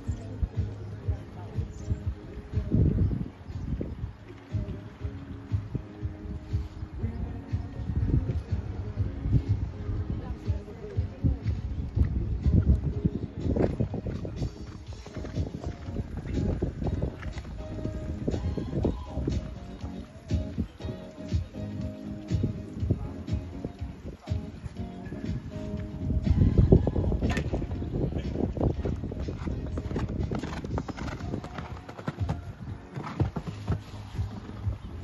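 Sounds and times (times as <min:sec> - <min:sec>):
background music: 0:00.0 - 0:35.0
hoofbeats on sand: 0:09.5 - 0:21.5, 0:25.4 - 0:35.0.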